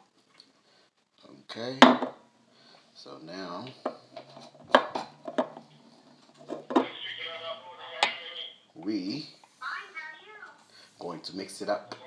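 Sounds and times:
background voices: 3.6s - 8.6s.

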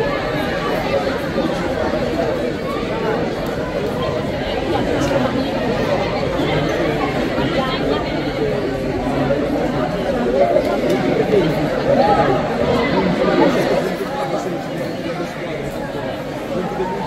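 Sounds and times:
chatter of many voices: 0.0s - 17.0s.

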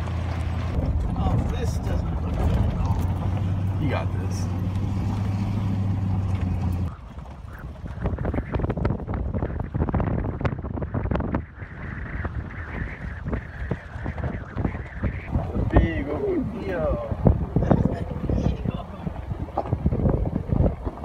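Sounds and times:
tyres crunching over rocks: 0.0s - 8.3s
truck engine humming: 0.0s - 8.5s
wind on microphone: 0.0s - 21.0s.

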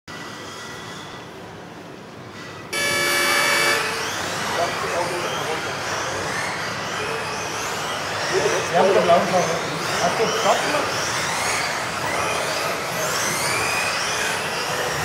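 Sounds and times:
rc car motors whining: 0.1s - 15.0s
electronic start tone: 2.8s - 4.0s.

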